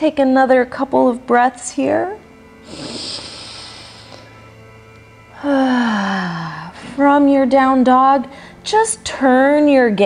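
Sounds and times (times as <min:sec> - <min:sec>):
woman sighing: 0:05.4 - 0:06.8.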